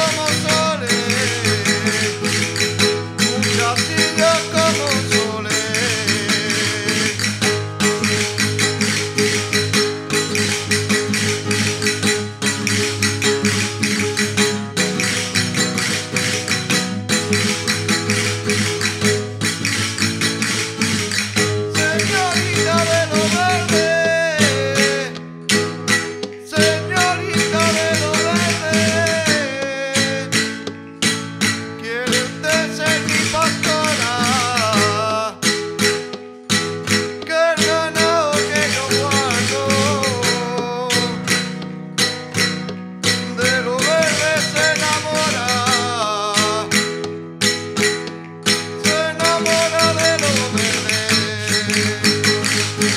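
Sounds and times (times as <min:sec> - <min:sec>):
person singing: 0:00.0 - 0:07.6, 0:21.5 - 0:25.2, 0:26.3 - 0:30.6, 0:31.8 - 0:35.6, 0:37.2 - 0:41.5, 0:43.3 - 0:47.0, 0:48.7 - 0:52.9
acoustic guitars strumming: 0:00.0 - 0:52.9.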